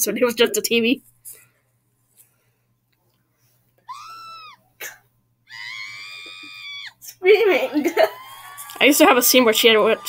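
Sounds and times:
cartoon character screaming: 0:03.9 - 0:04.6, 0:05.5 - 0:07.0.

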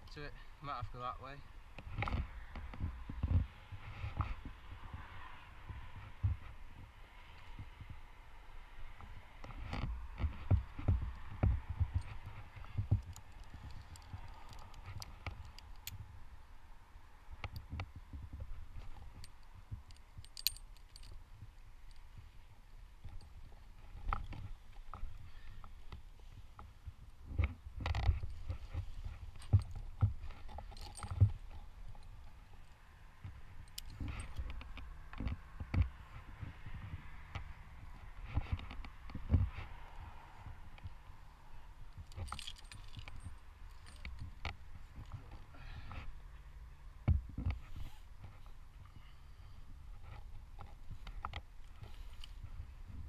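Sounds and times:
rope rustling: 0:09.0 - 0:16.4, 0:17.4 - 0:46.5, 0:47.2 - 0:53.0
metal climbing hardware clinking: 0:09.4 - 0:16.2, 0:17.4 - 0:36.0, 0:41.8 - 0:46.1.

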